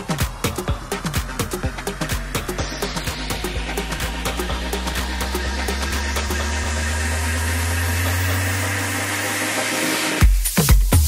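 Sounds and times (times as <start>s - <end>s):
low bass drone rising in pitch: 0.0s - 10.2s
electronic dance music build-up: 0.0s - 11.0s.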